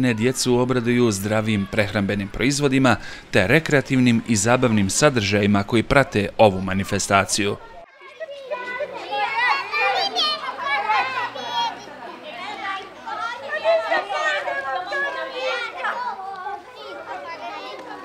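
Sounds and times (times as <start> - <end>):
children talking and calling out: 0.0 - 18.0.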